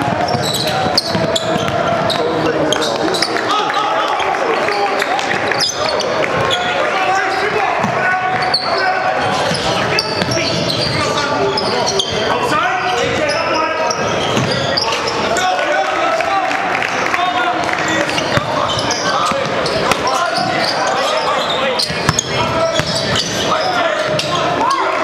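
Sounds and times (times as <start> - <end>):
echoing voices in a gym: 0.0 - 25.0
basketball bouncing on hardwood: 14.4 - 14.6.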